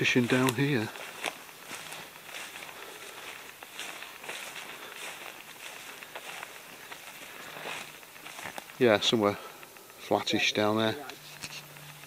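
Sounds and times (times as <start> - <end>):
footsteps through dry grass: 0.0 - 12.0.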